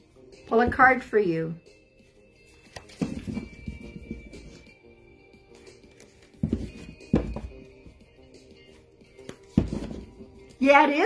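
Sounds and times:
soft music of held tones: 0.0 - 11.0.

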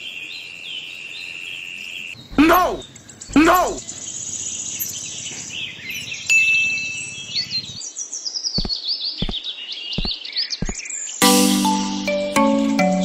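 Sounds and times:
birds chirping: 1.7 - 11.2.

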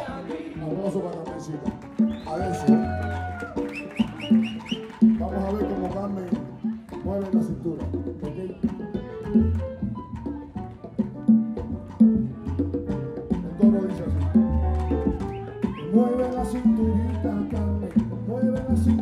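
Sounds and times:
live salsa band playing: 0.0 - 19.0.

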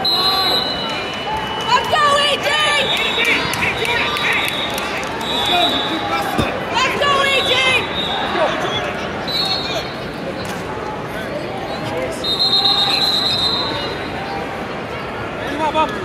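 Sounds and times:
voices echoing in a hall: 0.0 - 16.0
shoes squeaking on mats: 6.2 - 6.6
bodies thudding on mats: 6.3 - 6.6.

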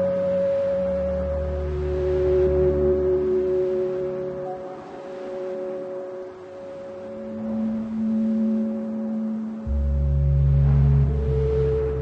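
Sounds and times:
sustained synthesizer chords: 0.0 - 12.0.

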